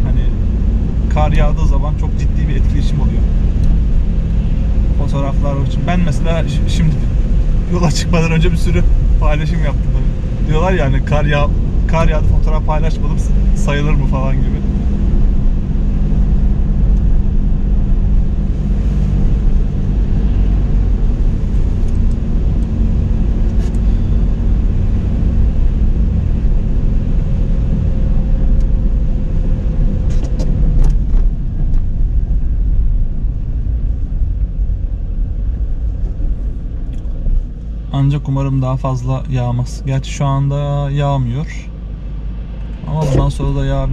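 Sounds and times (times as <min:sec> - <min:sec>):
car engine and road rumble: 0:00.0 - 0:43.9.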